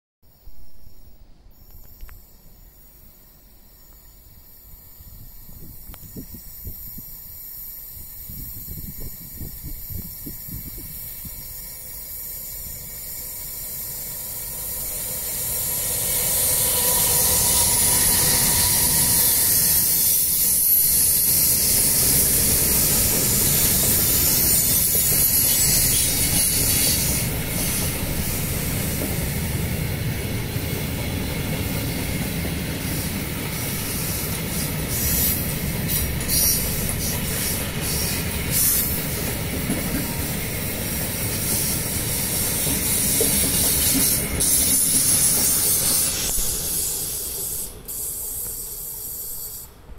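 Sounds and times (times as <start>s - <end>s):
electric locomotive passing: 1.0s - 49.9s
steel wheels rushing on rail: 1.6s - 49.9s.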